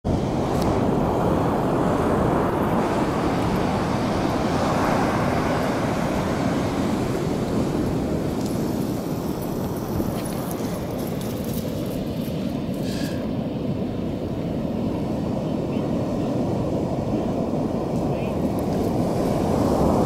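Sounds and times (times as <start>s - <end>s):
ocean surf roaring: 0.1s - 20.0s
wind on microphone: 0.1s - 20.0s.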